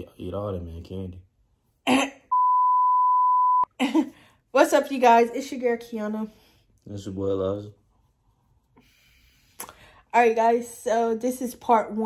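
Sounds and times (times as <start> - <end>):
test tone beep: 2.3 - 3.7.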